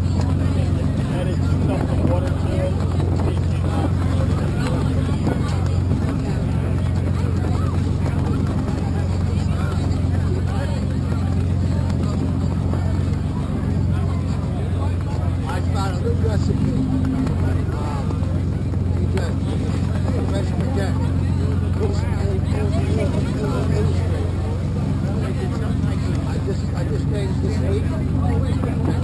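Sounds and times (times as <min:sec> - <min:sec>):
low motor hum: 0:00.0 - 0:29.0
people talking indistinctly: 0:00.0 - 0:29.0.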